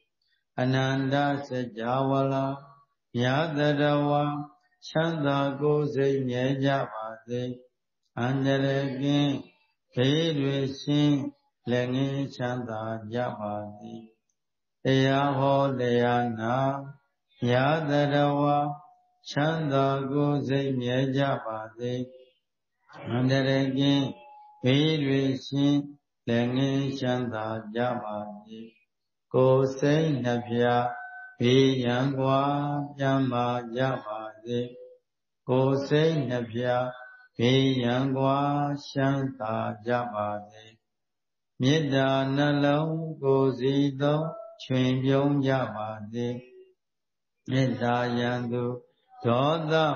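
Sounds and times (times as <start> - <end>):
man chanting: 0.6 - 14.2, 14.9 - 22.3, 22.9 - 40.8, 41.6 - 46.6, 47.5 - 49.9.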